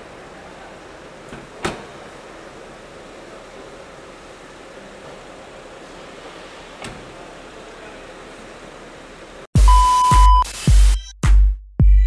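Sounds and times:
car park background hiss: 0.0s - 10.6s.

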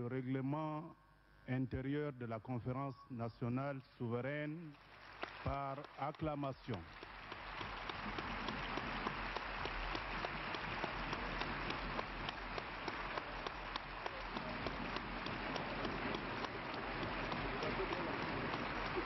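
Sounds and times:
large crowd applauding: 4.7s - 19.0s.

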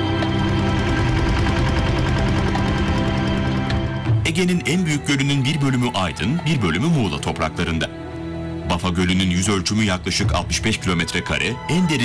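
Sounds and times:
boat moving through water: 0.0s - 3.9s
boat engine puttering: 0.0s - 4.2s.

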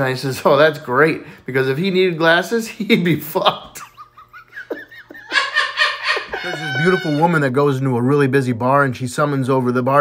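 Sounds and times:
man laughing: 3.4s - 7.4s.

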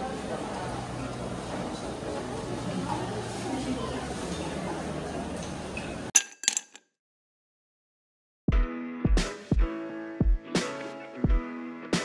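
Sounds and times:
hubbub of a busy concourse: 0.0s - 6.1s.

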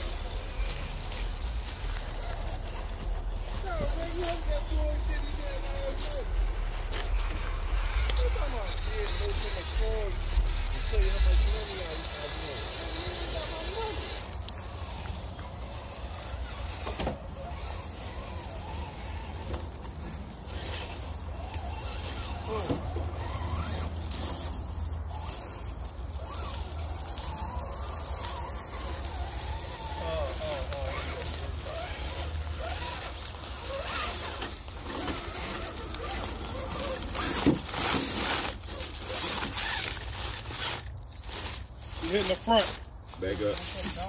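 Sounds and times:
electric motors whining: 0.0s - 44.0s
tyres scraping on rock: 0.0s - 44.0s.

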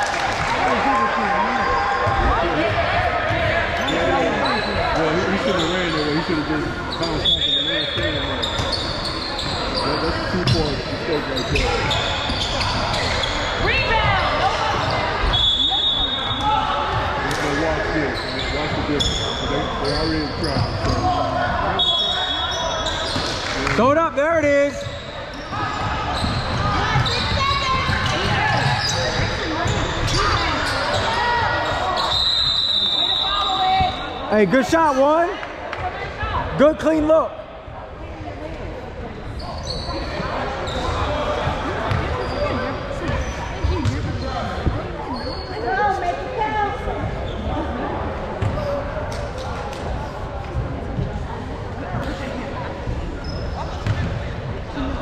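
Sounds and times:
voices echoing in hall: 0.0s - 55.0s
basketball bouncing on court: 41.5s - 42.2s, 48.4s - 48.6s, 53.8s - 54.3s.

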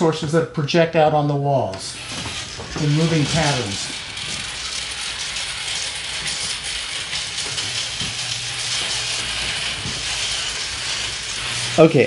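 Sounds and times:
hissing mechanical whir: 1.7s - 12.0s.

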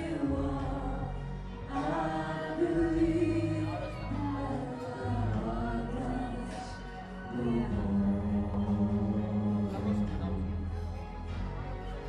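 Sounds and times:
woman and man singing karaoke: 0.0s - 11.0s.

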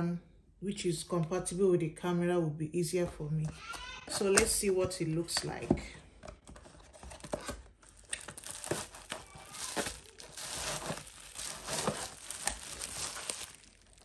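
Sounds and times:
packaging rustling and crinkling: 6.3s - 14.0s.

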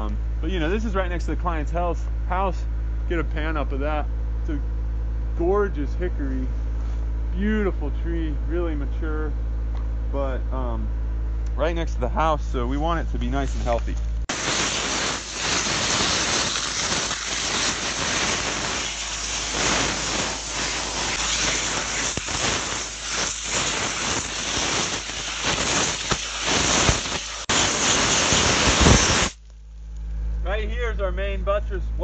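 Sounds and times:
compressed air jet hissing: 14.3s - 29.4s.

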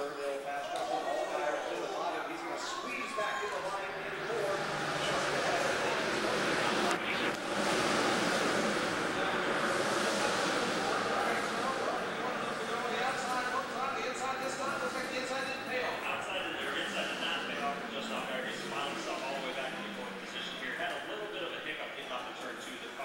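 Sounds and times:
muffled race car engines: 0.0s - 23.0s
people talking: 0.0s - 23.0s.

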